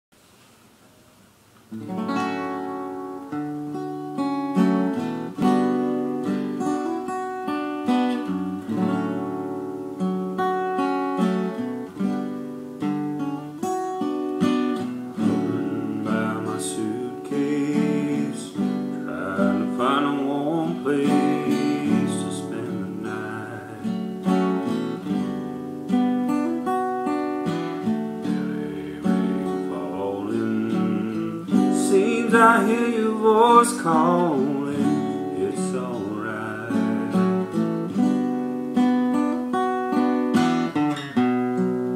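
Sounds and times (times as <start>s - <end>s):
acoustic guitar chords: 0.2s - 41.9s.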